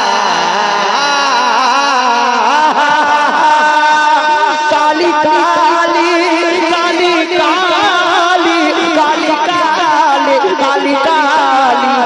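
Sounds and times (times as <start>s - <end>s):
person singing through pa: 0.0s - 12.0s.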